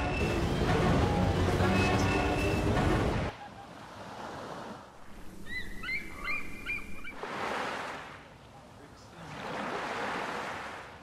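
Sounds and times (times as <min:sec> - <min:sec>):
sea water: 0:00.0 - 0:11.0
wind: 0:00.0 - 0:11.0.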